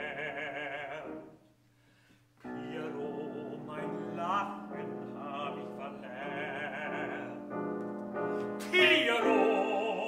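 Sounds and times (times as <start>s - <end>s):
baritone singing: 0.0s - 1.4s, 2.4s - 10.0s
grand piano chords: 0.0s - 1.6s, 2.4s - 10.0s.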